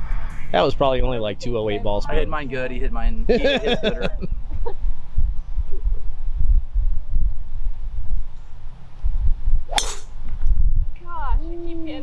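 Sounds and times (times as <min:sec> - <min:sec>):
low steady rumble: 0:00.0 - 0:12.0
golf club striking ball: 0:09.7 - 0:10.3.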